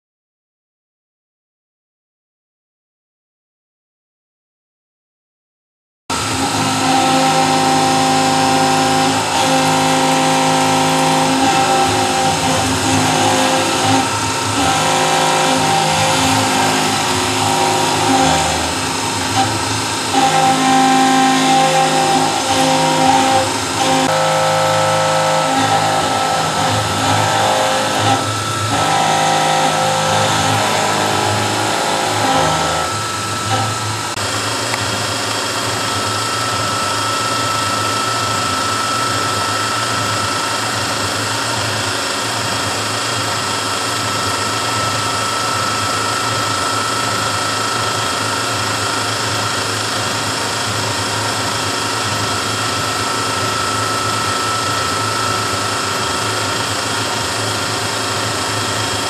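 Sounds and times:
mechanical whine: 6.1 - 59.0
milling machine cutting steel: 6.1 - 59.0.

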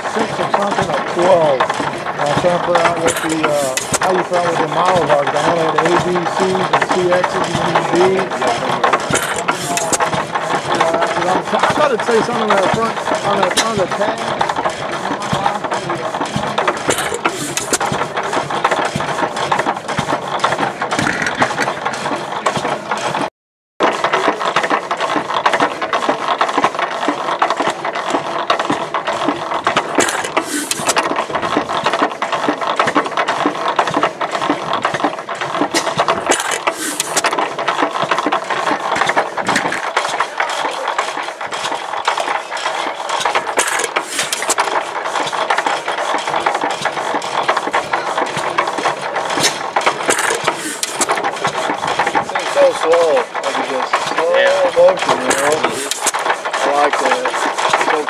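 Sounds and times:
gas engine clattering: 0.0 - 58.0.

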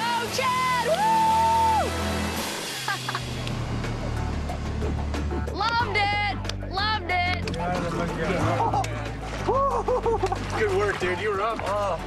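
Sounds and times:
people yelling and whooping: 0.0 - 2.0, 8.4 - 10.4
background music: 0.0 - 12.0.

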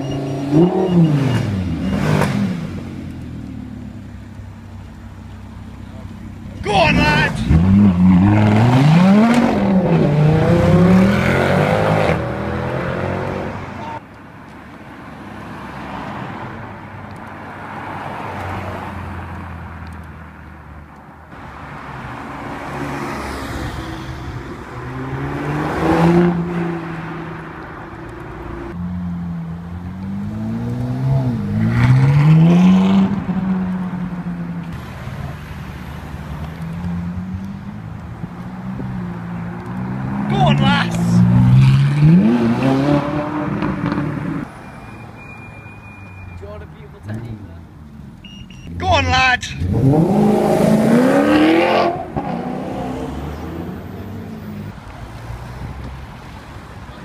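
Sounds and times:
supercar engines revving: 0.0 - 4.2, 4.8 - 14.0, 22.1 - 44.5, 48.0 - 57.0.

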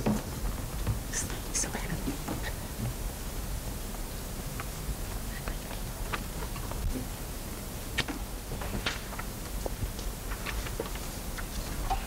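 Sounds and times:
room hum: 0.0 - 12.0
people whispering: 1.1 - 2.9, 5.2 - 5.9.

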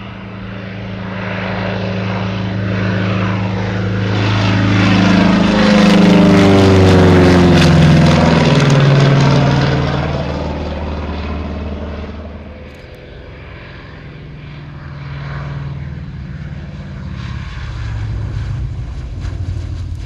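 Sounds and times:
propeller plane flyby: 0.0 - 20.0.

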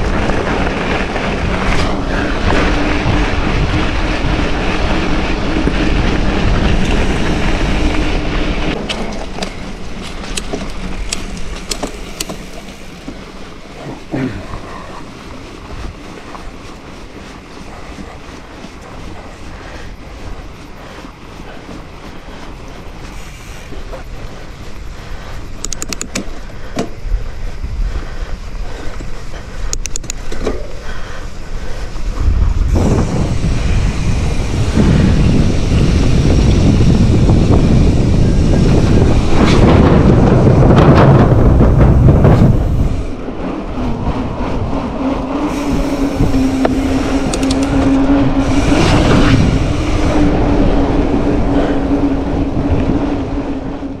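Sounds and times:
bike tyre rumble: 0.0 - 54.0
wind on microphone: 0.0 - 54.0
rattling clicks: 8.8 - 13.2, 25.6 - 27.0, 29.7 - 30.6, 46.6 - 48.0.

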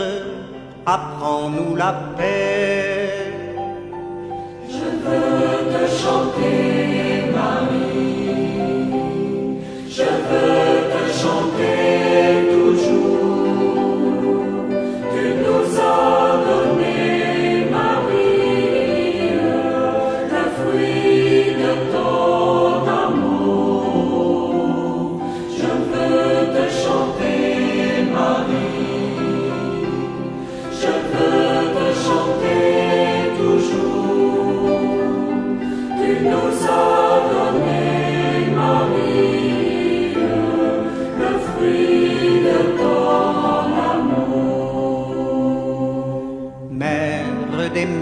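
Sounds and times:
choir singing a hymn: 0.0 - 48.0.

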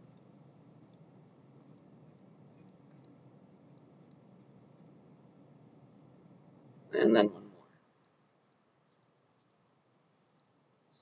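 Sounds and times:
stylus scratching on tablet screen: 0.0 - 5.0.

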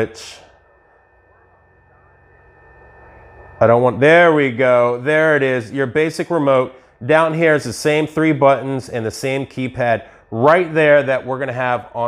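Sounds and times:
faint low hum: 0.0 - 12.0
high-pitched projector whine: 0.0 - 12.0.

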